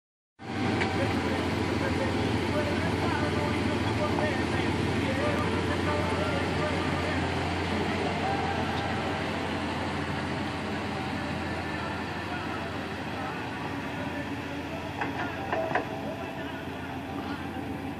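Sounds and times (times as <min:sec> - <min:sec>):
pickup truck engine running: 0:00.4 - 0:17.9.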